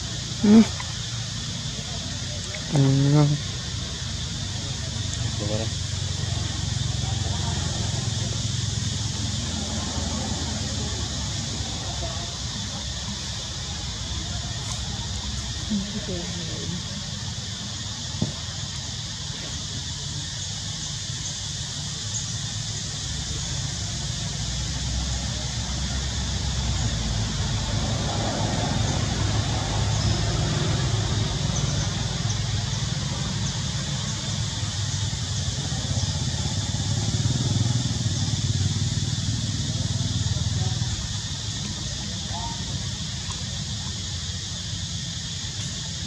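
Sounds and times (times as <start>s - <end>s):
motor vehicle engine hum: 0.0s - 20.6s, 21.3s - 46.0s
high-pitched outdoor hiss: 0.0s - 46.0s.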